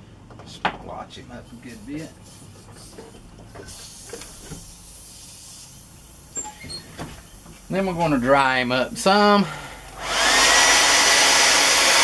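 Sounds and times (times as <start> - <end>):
airbrush hiss: 1.5 - 9.4.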